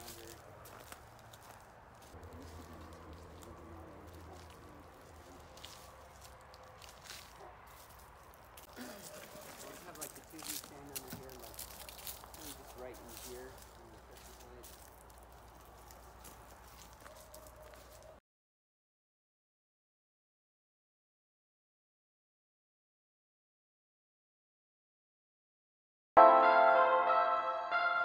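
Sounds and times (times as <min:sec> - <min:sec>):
distant voices: 0:00.0 - 0:18.2
footsteps on gravel: 0:00.0 - 0:18.2.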